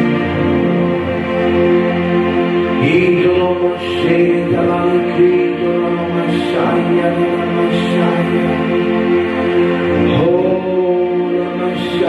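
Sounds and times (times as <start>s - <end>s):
soft ambient music: 0.0s - 12.0s.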